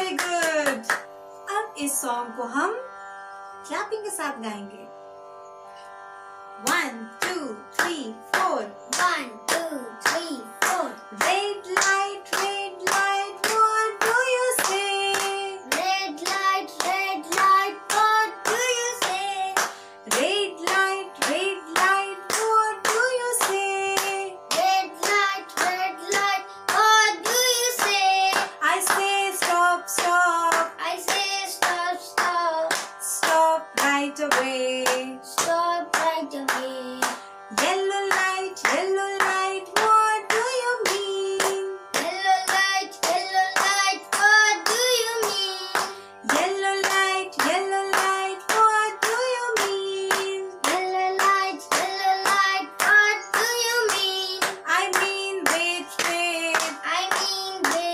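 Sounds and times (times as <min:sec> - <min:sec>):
hands clapping: 0:00.0 - 0:01.1, 0:06.7 - 0:57.9
woman singing: 0:00.0 - 0:02.4, 0:06.6 - 0:57.9
boy singing: 0:06.7 - 0:57.9.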